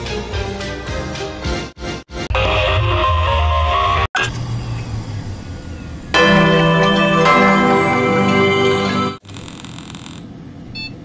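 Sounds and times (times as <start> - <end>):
dense sustained musical tones: 6.2 - 9.2
loud sustained chord: 6.2 - 9.2.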